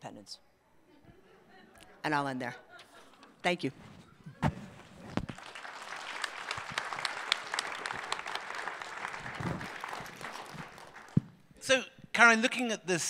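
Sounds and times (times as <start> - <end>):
audience applauding: 5.3 - 11.2.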